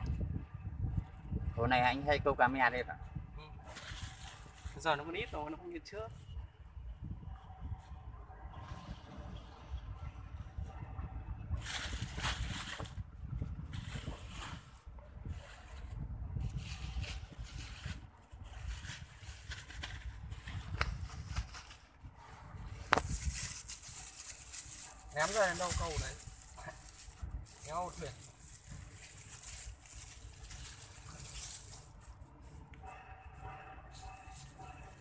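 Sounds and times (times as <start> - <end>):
plastic bag rustling: 22.8 - 32.6.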